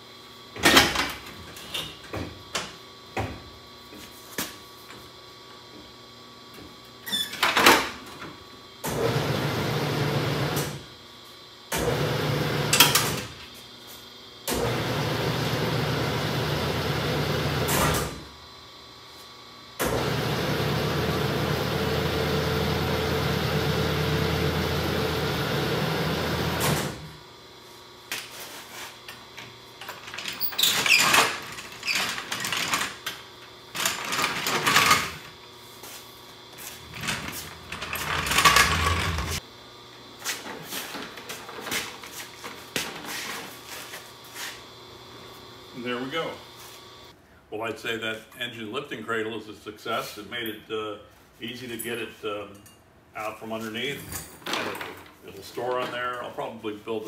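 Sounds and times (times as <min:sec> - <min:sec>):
hydraulic pump motor running: 0:08.8 - 0:10.8, 0:11.7 - 0:13.3, 0:14.5 - 0:18.2, 0:19.8 - 0:27.0, 0:36.6 - 0:39.4
floor jack clunking and rattling: 0:36.8 - 0:39.4.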